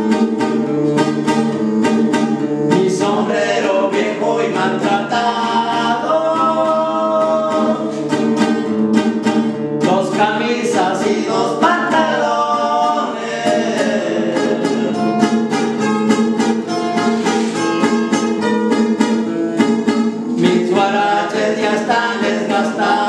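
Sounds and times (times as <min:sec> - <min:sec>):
strummed acoustic guitars: 0:00.0 - 0:23.0
men singing a duet: 0:01.5 - 0:08.1, 0:09.8 - 0:15.8, 0:20.2 - 0:23.0.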